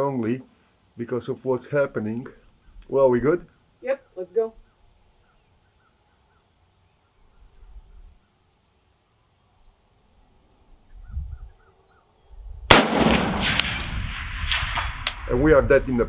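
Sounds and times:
rifle shot with long echo: 12.7 - 15.2.

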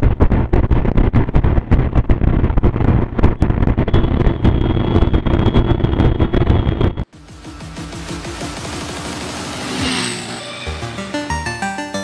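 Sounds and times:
wind buffeting microphone: 0.0 - 7.0.

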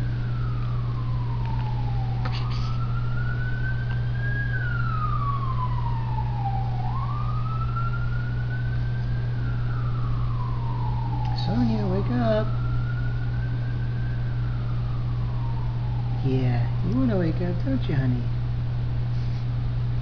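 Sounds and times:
wailing siren: 0.0 - 18.1
steady low hum: 0.0 - 20.0.

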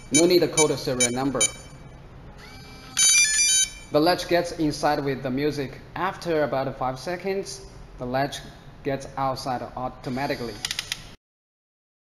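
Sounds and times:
electronic lock beep melody: 0.0 - 1.8, 2.4 - 3.9.

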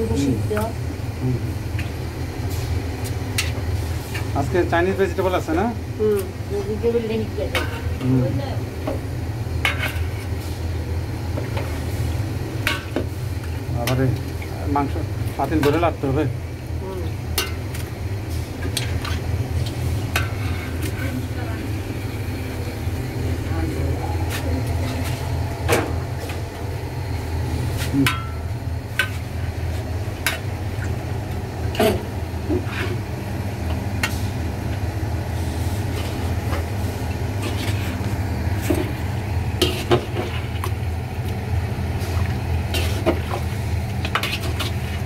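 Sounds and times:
low mechanical hum: 0.0 - 45.0.

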